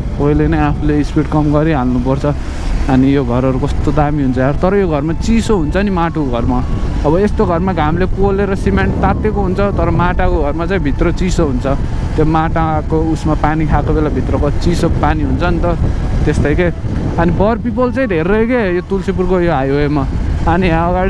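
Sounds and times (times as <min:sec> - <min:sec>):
man talking: 0:00.0 - 0:21.0
motorcycle engine rumble: 0:00.0 - 0:21.0.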